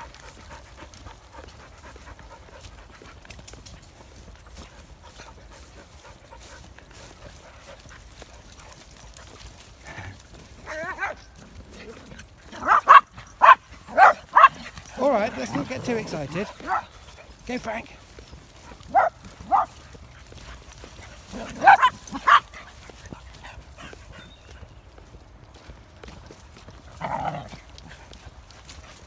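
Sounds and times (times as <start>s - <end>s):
low outdoor background: 0.0s - 29.0s
dog barking excitedly: 10.6s - 11.4s, 12.5s - 17.0s, 18.8s - 19.8s, 21.3s - 22.7s.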